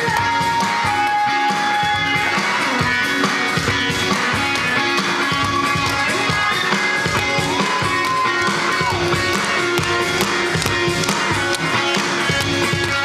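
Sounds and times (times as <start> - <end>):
live rock band: 0.0 - 13.0.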